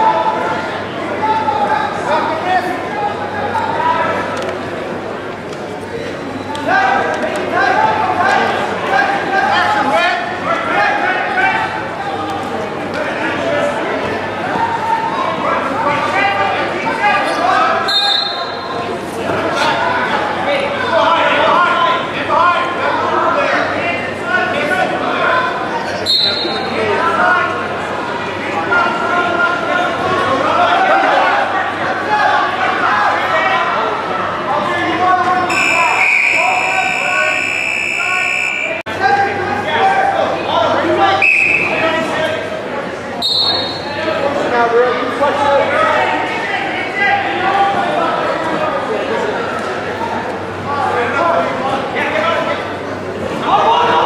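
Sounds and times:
indistinct voices echoing: 0:00.0 - 0:54.0
scoreboard buzzer tone: 0:35.5 - 0:38.8.

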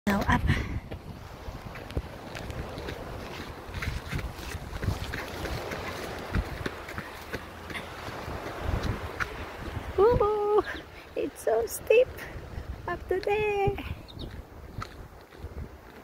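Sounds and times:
footsteps on sandy dirt path: 0:00.1 - 0:11.0, 0:12.0 - 0:16.0
wind buffeting microphone: 0:00.1 - 0:16.0.

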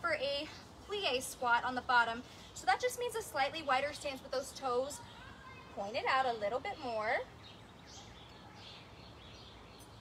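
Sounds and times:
birds chirping: 0:00.1 - 0:10.0.

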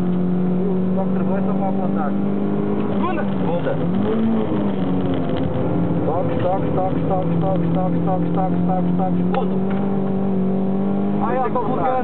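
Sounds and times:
car engine at high revs: 0:00.0 - 0:12.0.

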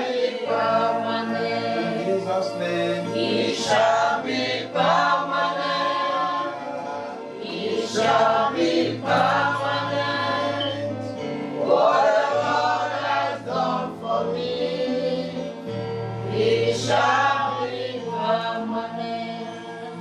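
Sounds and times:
voices singing gospel chorus: 0:00.0 - 0:20.0.

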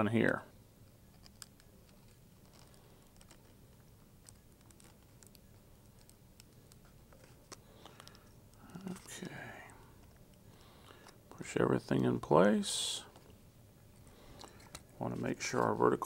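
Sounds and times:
small clicks and handling noise: 0:00.8 - 0:12.0, 0:13.0 - 0:16.0.

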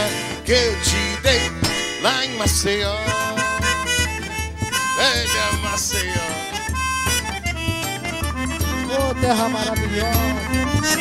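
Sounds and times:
accordion melody: 0:00.0 - 0:11.0
steady drum beat: 0:00.0 - 0:11.0
strummed guitar: 0:00.0 - 0:11.0.

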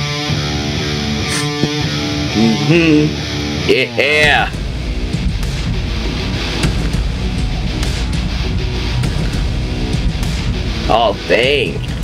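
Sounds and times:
trailer music with guitar: 0:00.0 - 0:12.0.

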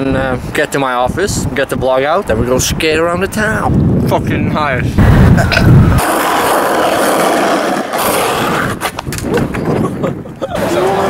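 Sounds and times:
skateboard wheels rolling on asphalt: 0:05.6 - 0:10.0.

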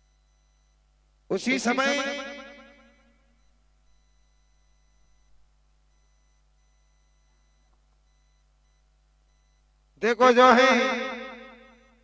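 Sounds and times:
faint electrical hum: 0:00.0 - 0:12.0
narrator voice: 0:01.3 - 0:02.4.

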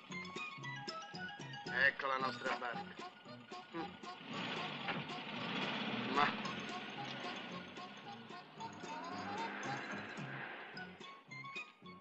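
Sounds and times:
van engine running: 0:00.0 - 0:12.0.

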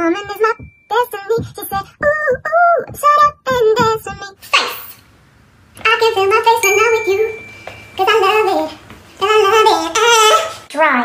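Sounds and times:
woman singing a cappella: 0:00.0 - 0:04.5, 0:05.8 - 0:10.6.

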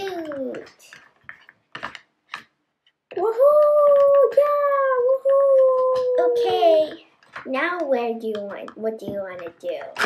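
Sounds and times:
child's voice: 0:00.0 - 0:01.0, 0:03.1 - 0:10.0
plastic toy clicking: 0:00.0 - 0:10.0.

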